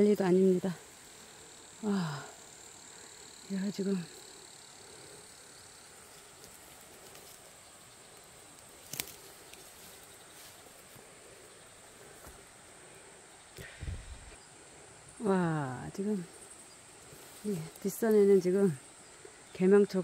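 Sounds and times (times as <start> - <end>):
insect chirring: 0.0 - 20.0
soft background hiss: 0.0 - 20.0.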